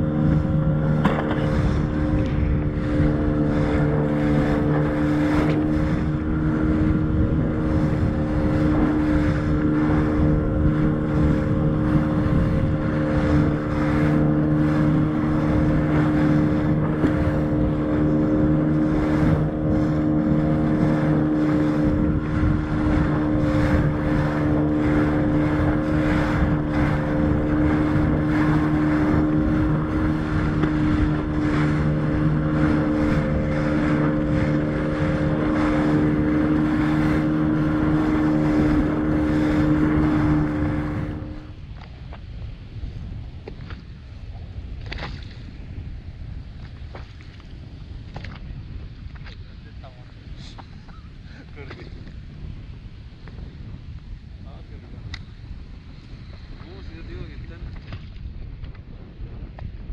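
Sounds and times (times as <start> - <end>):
outboard motor running: 0.0 - 59.9
water rushing along hull: 0.0 - 59.9
wind buffeting microphone: 0.0 - 59.9.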